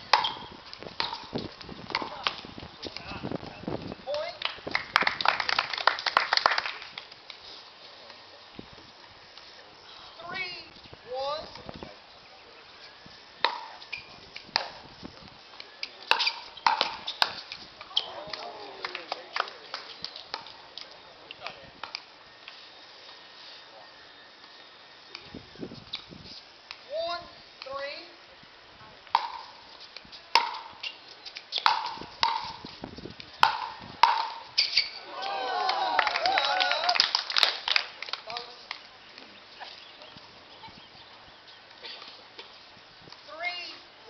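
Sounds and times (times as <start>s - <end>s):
voices: 7.8s - 25.8s, 35.0s - 37.1s
paddles hitting plastic ball: 31.6s - 32.6s, 33.4s - 34.4s.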